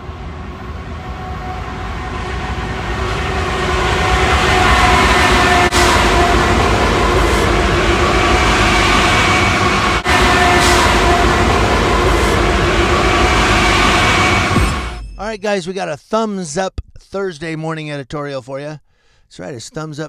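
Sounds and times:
freight train rumbling past: 0.0 - 15.4.

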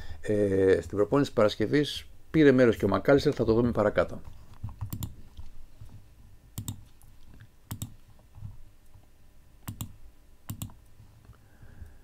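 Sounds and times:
faint room hiss: 0.0 - 12.0
computer mouse clicks: 4.6 - 5.2, 6.6 - 8.0, 9.6 - 10.8.

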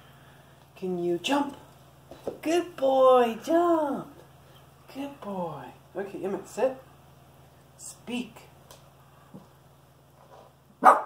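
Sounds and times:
puppy barking: 10.8 - 11.0.

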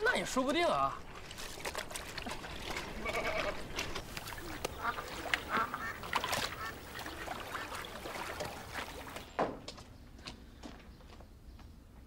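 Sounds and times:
geese honking: 4.5 - 9.1.

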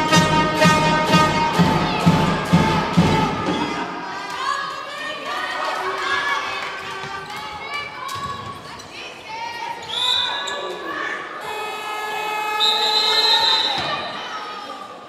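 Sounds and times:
players and spectators shouting: 0.0 - 8.2, 9.3 - 15.0
ball bouncing on hall floor: 6.8 - 8.9.

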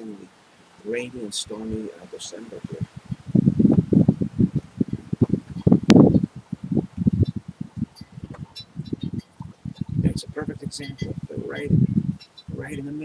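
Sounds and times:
storm wind buffeting microphone: 0.8 - 13.0.

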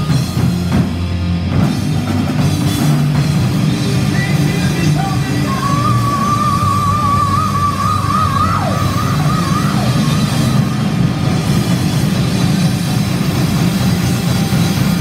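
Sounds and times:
heavy metal band playing: 0.0 - 15.0.

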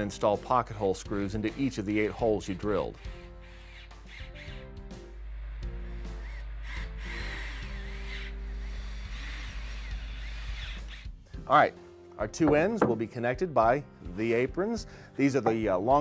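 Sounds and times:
background music: 0.0 - 16.0
cordless drill driving screws: 6.2 - 11.1.

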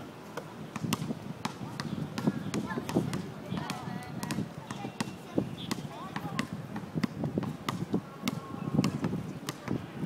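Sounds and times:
basketball bouncing on hard court: 0.7 - 9.8.

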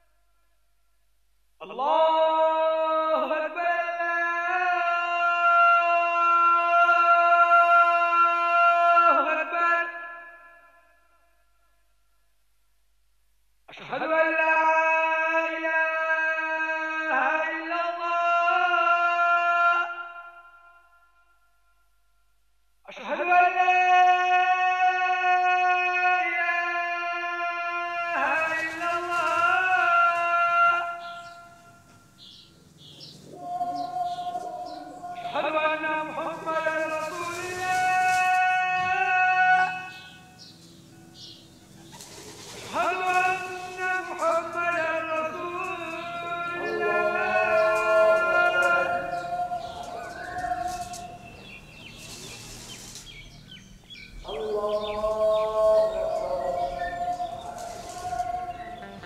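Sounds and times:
man chanting a held note: 22.9 - 32.2, 33.2 - 40.4, 42.6 - 53.0, 54.2 - 59.0
bird chirps: 28.2 - 38.1, 39.4 - 59.0.

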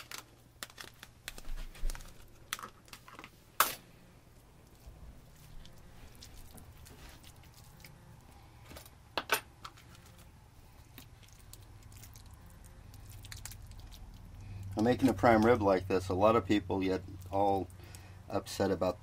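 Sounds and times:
low steady hum: 0.0 - 19.0
wet squishing of hands rubbing meat: 4.3 - 8.5, 9.9 - 18.1.

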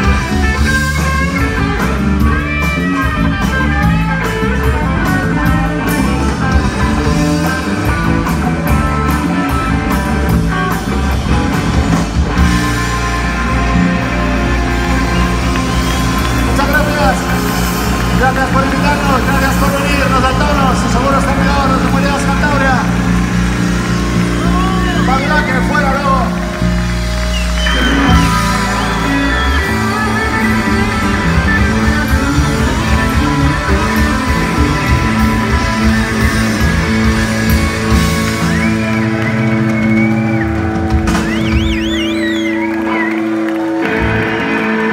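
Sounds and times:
bending high guitar notes: 0.0 - 44.9
rock band holding loud low chord: 0.0 - 44.9
crowd shouting: 22.6 - 37.8.

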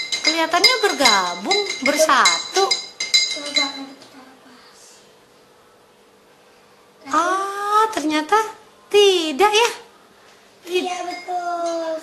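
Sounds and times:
spoon clinking glass jar: 0.0 - 3.8.

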